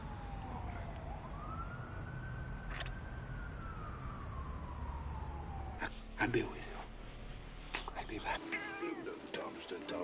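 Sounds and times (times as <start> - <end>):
distant siren wailing: 0.0 - 6.0.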